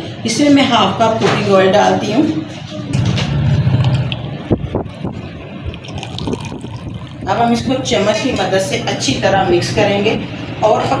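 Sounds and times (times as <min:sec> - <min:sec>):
oil trickling into water: 0:05.1 - 0:07.4.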